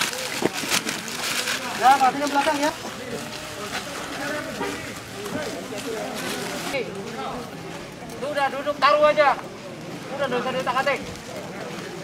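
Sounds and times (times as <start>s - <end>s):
backpacks rustling and crinkling: 0.0s - 8.6s.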